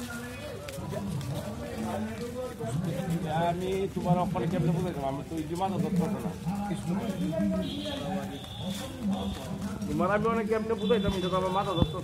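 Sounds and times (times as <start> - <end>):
men calling out and talking: 0.0 - 12.0.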